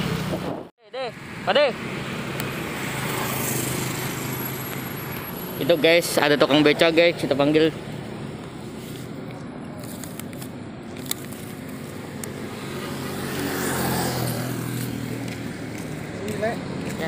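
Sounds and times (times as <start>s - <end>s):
vehicle passing: 0.0s - 17.0s.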